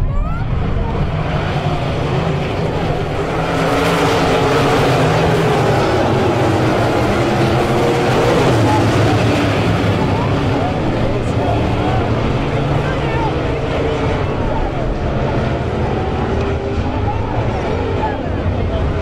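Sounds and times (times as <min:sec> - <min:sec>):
race car engines droning: 0:00.0 - 0:19.0.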